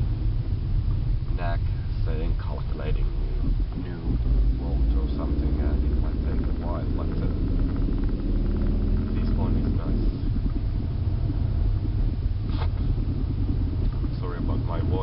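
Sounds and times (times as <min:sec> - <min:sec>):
car engine and road rumble: 0:00.0 - 0:15.0.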